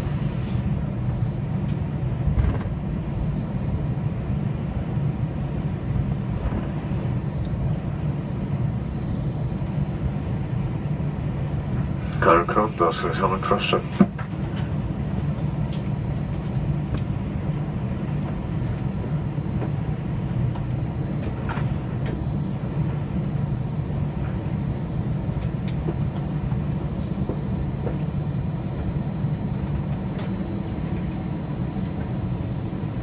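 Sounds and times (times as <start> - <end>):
aircraft cabin rumble: 0.0 - 33.0.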